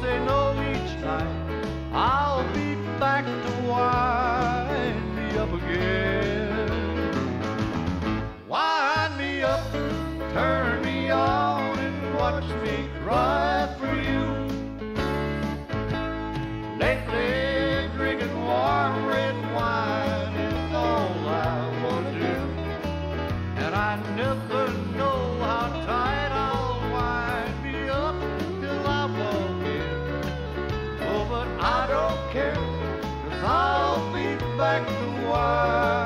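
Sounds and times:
bass line: 0.0s - 8.4s, 9.0s - 36.0s
rhythm guitar: 0.0s - 36.0s.

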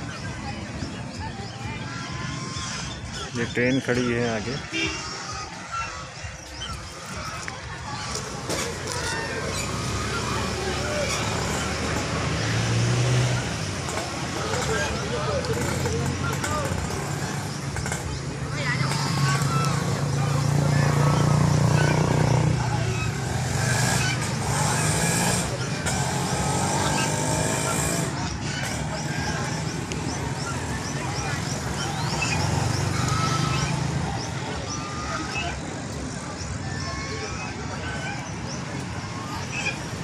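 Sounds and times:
people's voices: 0.0s - 40.0s
engine running: 5.5s - 36.7s.

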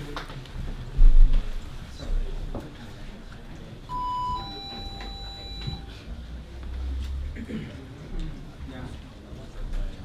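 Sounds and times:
low room murmur: 0.0s - 10.0s
electronic two-tone chime: 3.9s - 5.9s.

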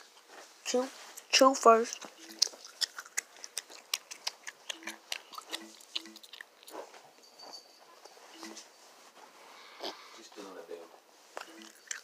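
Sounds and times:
gum chewing wet clicks: 1.9s - 6.8s, 11.4s - 12.0s.

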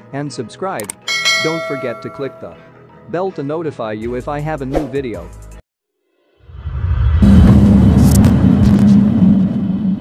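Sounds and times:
short swishes: 4.7s - 5.0s
loud deep rumble: 6.5s - 10.0s.

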